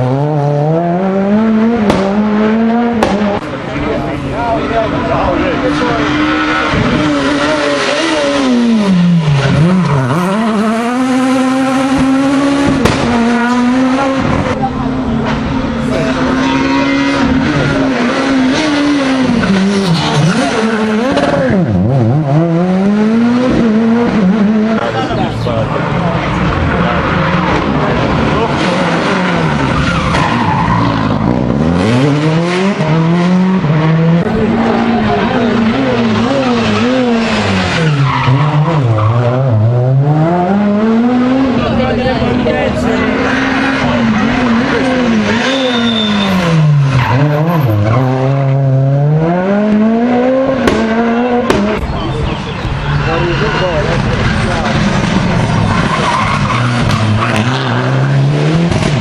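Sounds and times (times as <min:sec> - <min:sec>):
rally car engines revving: 0:00.0 - 0:59.0.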